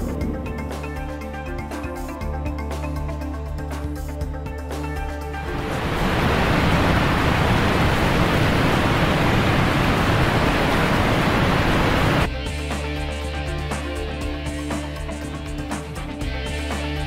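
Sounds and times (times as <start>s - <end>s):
ocean surf rushing: 5.4s - 12.3s.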